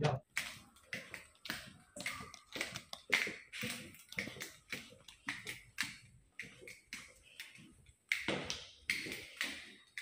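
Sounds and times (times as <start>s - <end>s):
footsteps on hard floor: 0.3s - 10.0s.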